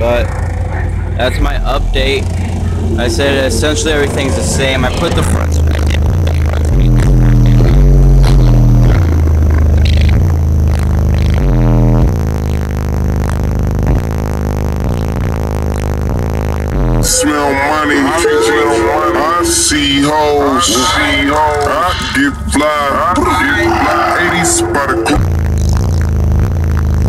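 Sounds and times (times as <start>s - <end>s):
bass-heavy music through subwoofer: 0.0s - 27.0s
rapped vocal: 0.0s - 27.0s.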